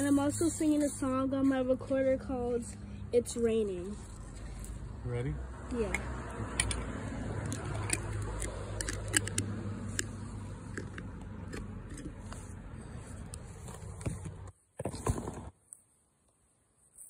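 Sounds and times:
clicks and scratches: 5.8s - 15.9s.

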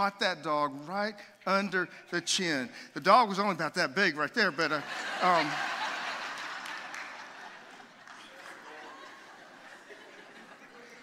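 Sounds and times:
congregation laughing: 4.1s - 11.0s
scattered clapping: 6.2s - 9.3s.

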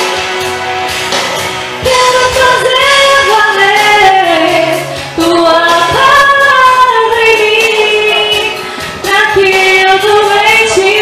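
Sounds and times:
woman singing into microphone: 1.8s - 11.0s.

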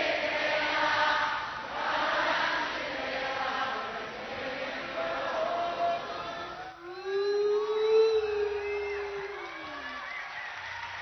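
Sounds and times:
crowd whooping: 5.5s - 11.0s
person singing a long note: 6.8s - 9.8s.

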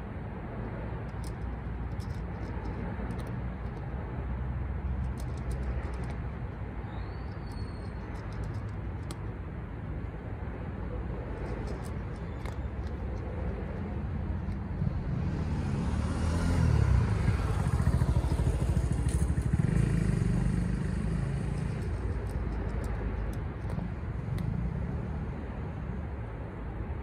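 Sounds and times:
vehicle passing by: 11.4s - 26.1s.

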